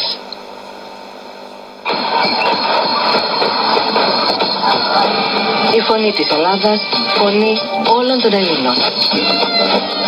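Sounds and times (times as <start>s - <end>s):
muffled shortwave radio music: 1.8s - 10.0s.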